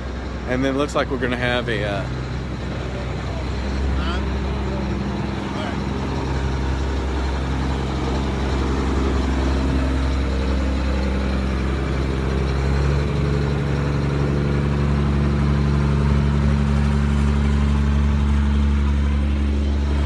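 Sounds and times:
large engine idling: 0.0 - 20.0.

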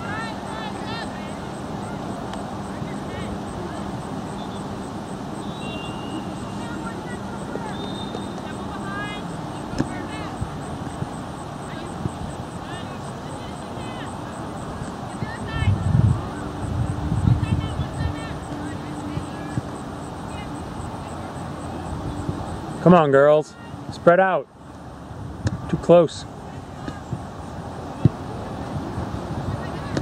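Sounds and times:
distant voices: 0.0 - 30.0
wind on microphone: 14.6 - 19.8, 21.6 - 22.8, 26.9 - 30.0.

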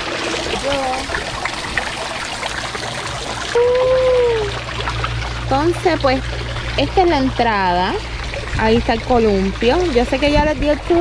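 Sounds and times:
water trickling: 0.0 - 11.0.

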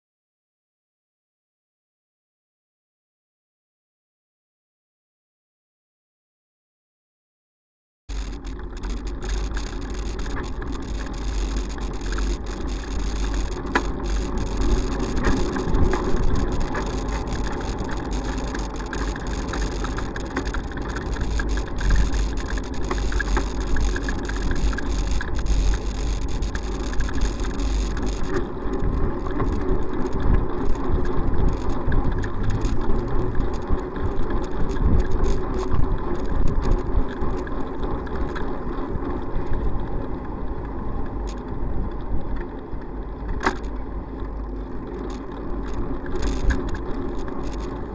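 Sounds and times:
road traffic and car engines: 8.1 - 47.9
wind rumble on microphone: 8.1 - 47.9.

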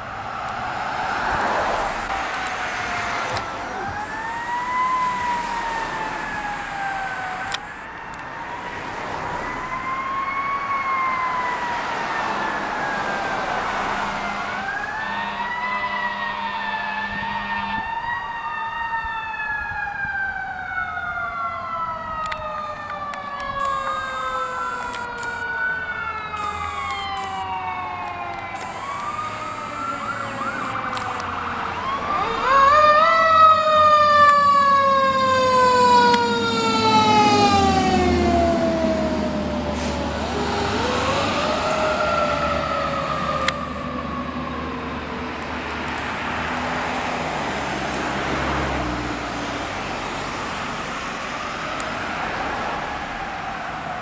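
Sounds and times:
sirens wailing: 0.0 - 54.0.

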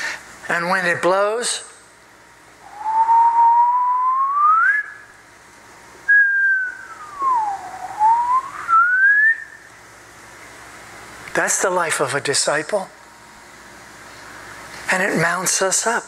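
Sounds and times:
man whistling sliding notes: 2.6 - 5.1, 6.1 - 9.6.

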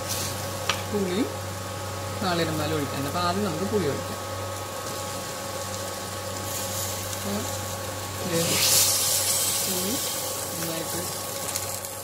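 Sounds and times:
low mechanical hum: 0.0 - 12.0
vegetables frying in a pan: 0.0 - 12.0.

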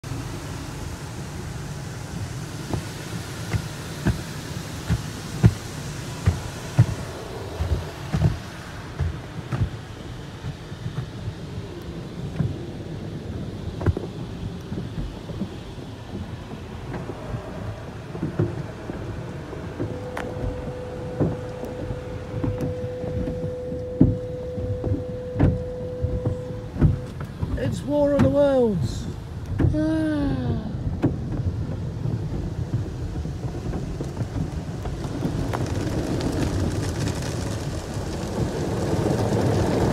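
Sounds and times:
steady hum: 0.0 - 31.3
water spray drumming on car: 0.0 - 39.9
brushes thumping against car: 2.6 - 11.3, 13.7 - 28.4.

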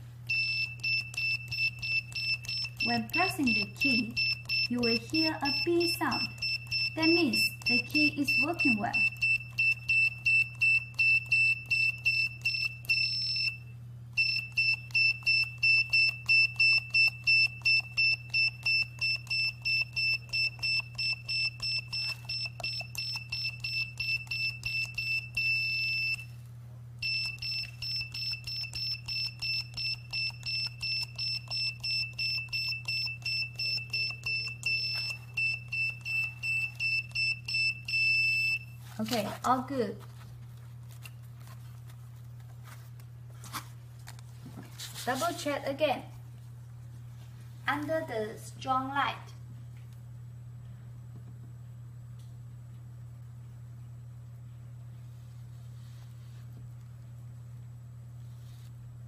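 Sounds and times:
short high-pitched beeps: 0.3 - 13.6.

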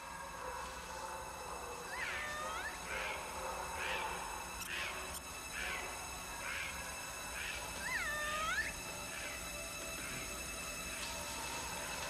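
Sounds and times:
faint chirps: 0.0 - 12.0
monkey call: 1.6 - 11.2.

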